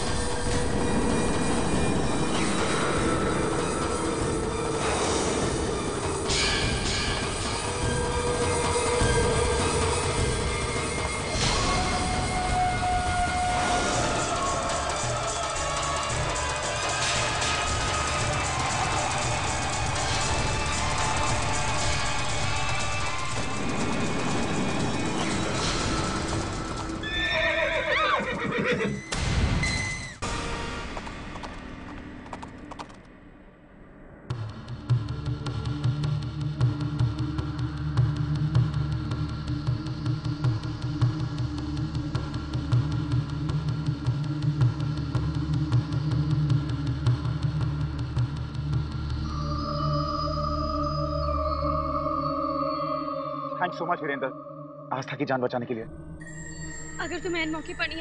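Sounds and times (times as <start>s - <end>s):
dense orchestral score: 0.0s - 27.0s
horse whinnying: 27.0s - 30.2s
horse galloping: 30.8s - 33.1s.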